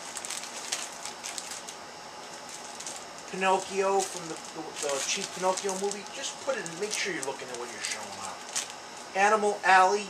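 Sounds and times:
plastic bag crinkling: 0.0s - 9.1s.

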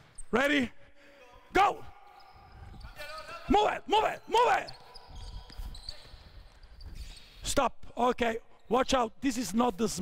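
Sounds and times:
footsteps on hardwood court: 4.7s - 7.2s.

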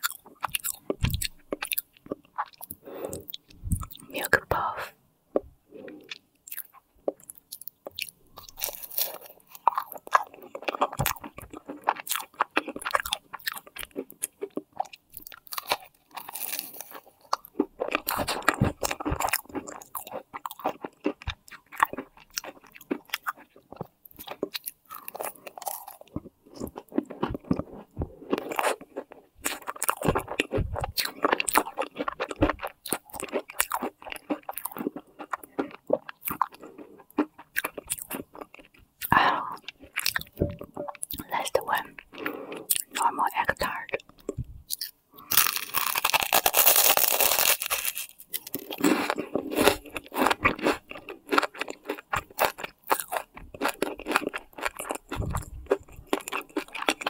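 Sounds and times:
crunchy chewing: 0.0s - 4.4s, 5.3s - 57.0s.

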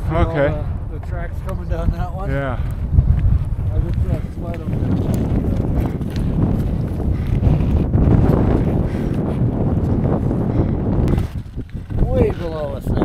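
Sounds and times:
wind buffeting microphone: 0.0s - 13.0s
skis crunching over snow: 3.7s - 10.0s.

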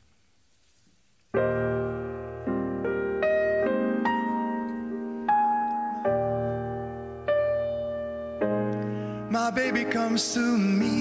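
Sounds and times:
grand piano chords: 1.3s - 11.0s.

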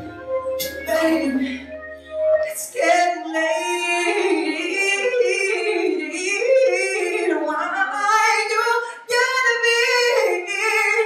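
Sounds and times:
woman singing soul ballad: 0.0s - 11.0s.

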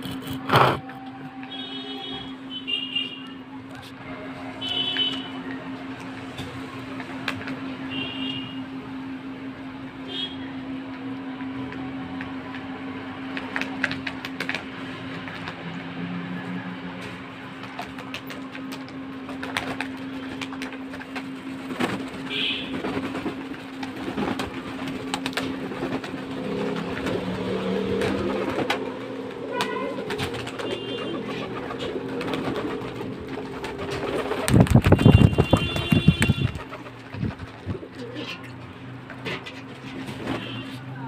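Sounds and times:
wet wings flapping: 17.7s - 37.8s
pigeons cooing: 26.4s - 34.5s, 36.7s - 38.6s.

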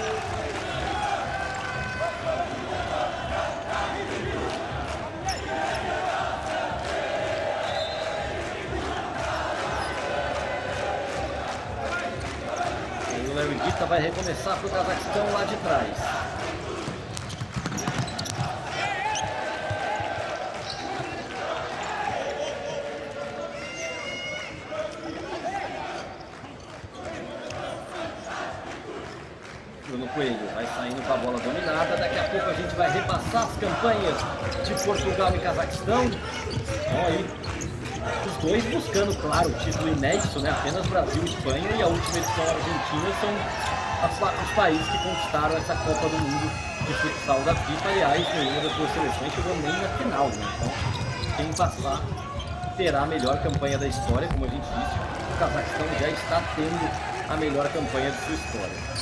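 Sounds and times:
ball kicked and bouncing: 16.9s - 18.6s, 50.6s - 54.7s
players calling out: 30.0s - 59.0s.

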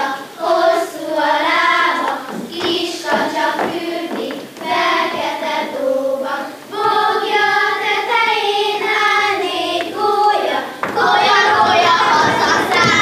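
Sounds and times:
children singing a folk song: 0.0s - 13.0s.

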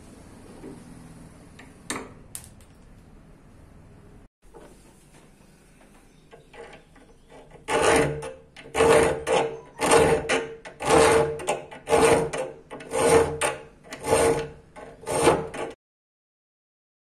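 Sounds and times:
file rasping on ringing steel: 6.5s - 15.8s.

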